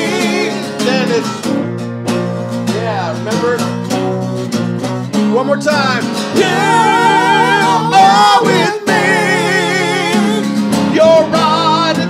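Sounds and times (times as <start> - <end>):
person singing: 0.0 - 1.6, 6.3 - 12.0
acoustic and electric guitars: 0.0 - 12.0.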